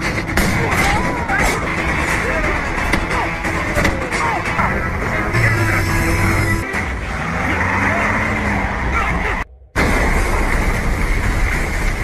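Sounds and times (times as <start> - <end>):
vehicle engines and road noise: 2.8 - 12.0.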